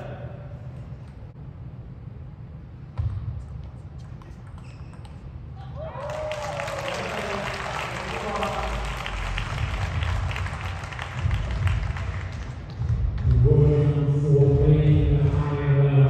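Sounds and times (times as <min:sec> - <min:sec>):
crowd clapping and cheering: 0:05.8 - 0:13.5.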